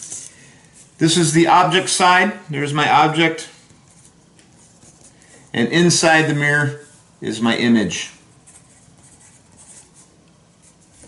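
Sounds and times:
pencil scratching on paper: 3.8 - 5.2, 8.4 - 11.0.

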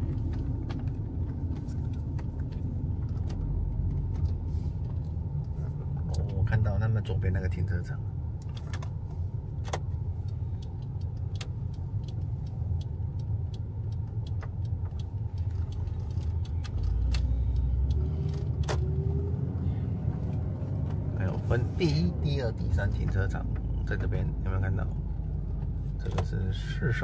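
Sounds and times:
van engine and tyres rumble: 0.0 - 27.0
light clicks and rattles: 8.4 - 19.1.

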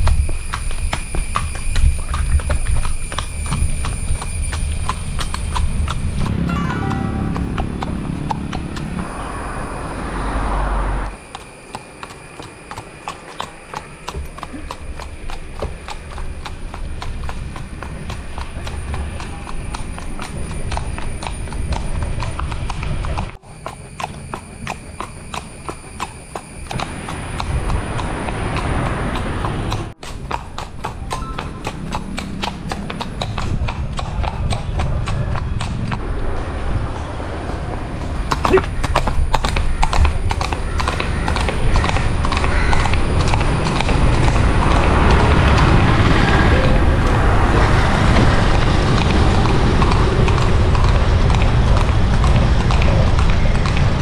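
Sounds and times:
horse hooves clip-clopping on road: 0.0 - 9.4, 10.2 - 54.0.

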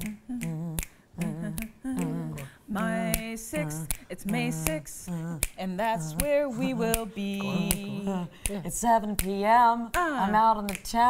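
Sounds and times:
person humming: 0.0 - 9.4
finger snaps: 0.0 - 11.0.

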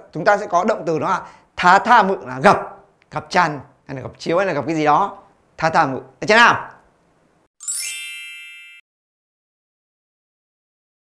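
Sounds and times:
bright chime ding: 7.6 - 8.8.

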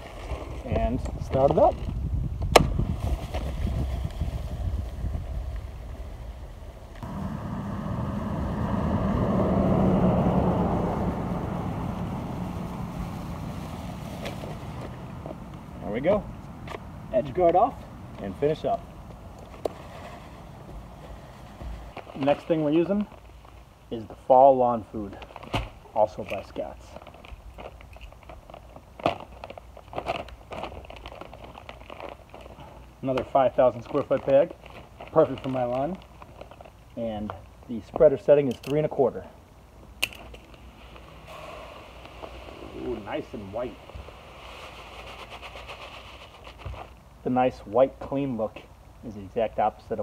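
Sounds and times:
low rumble: 3.9 - 17.2
spreader whirring hiss: 40.7 - 46.6.

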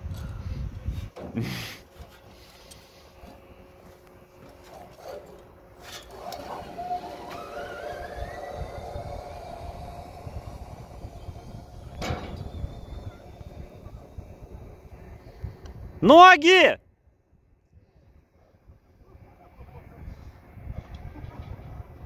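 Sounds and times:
pulley whine rising: 5.0 - 16.1
wind rushing: 7.8 - 16.1.

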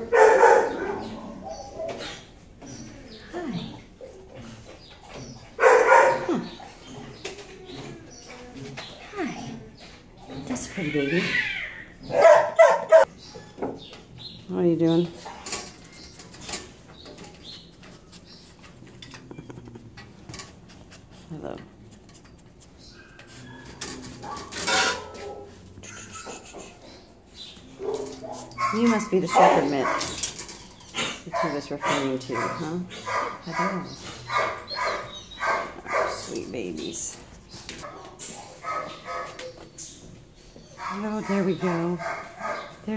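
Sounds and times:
dogs barking: 0.0 - 2.3, 5.4 - 7.3, 12.0 - 13.5, 23.3 - 26.5, 27.6 - 36.7, 37.7 - 39.8, 40.6 - 42.9
dog mouthing and snuffling: 18.0 - 22.8.

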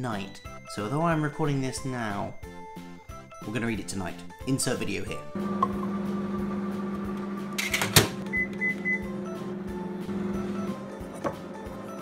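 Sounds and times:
microwave oven humming: 5.4 - 12.0
microwave click: 7.0 - 9.1.

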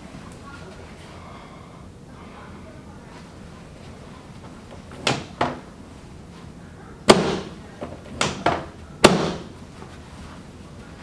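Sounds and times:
chiropractic table knocking: 4.9 - 5.7, 7.1 - 9.6.

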